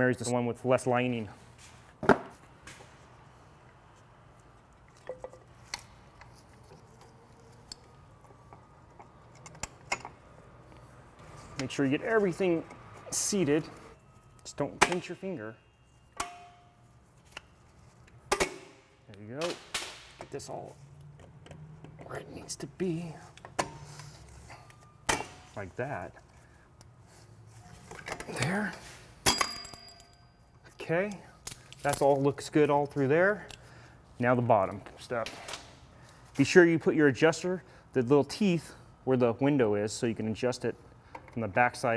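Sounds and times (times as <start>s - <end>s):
metallic clicks of brake hardware: 4.8s - 10.8s
metal spring snapping into place: 16.2s - 16.7s.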